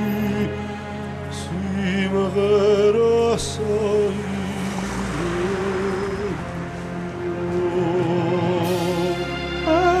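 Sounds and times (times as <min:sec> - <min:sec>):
slow sad music: 0:00.0 - 0:10.0
rushing noise: 0:03.4 - 0:10.0.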